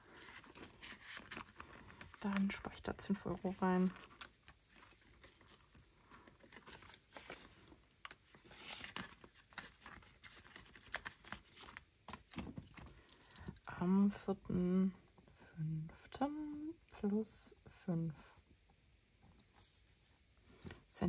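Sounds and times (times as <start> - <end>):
paper sheets rustling: 0.0 - 7.7, 8.3 - 12.6.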